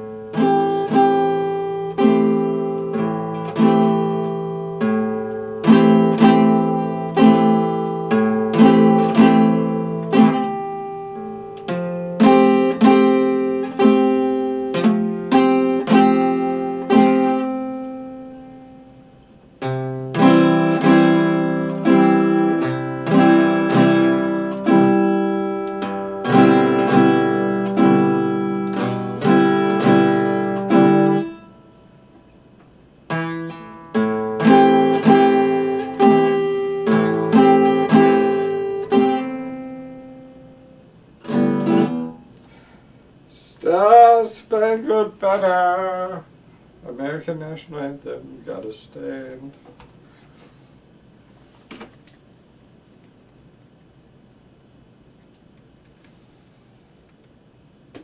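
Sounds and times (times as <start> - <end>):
acoustic guitar strumming: 0.0 - 49.3.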